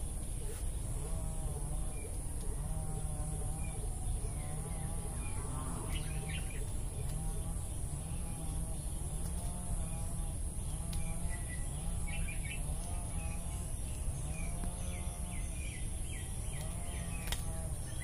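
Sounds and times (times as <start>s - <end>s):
insect whine: 0.0s - 18.0s
bird chirping: 2.8s - 18.0s.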